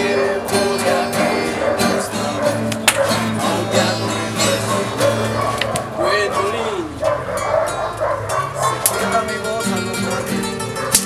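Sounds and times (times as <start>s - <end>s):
acoustic guitars strumming: 0.0s - 11.0s.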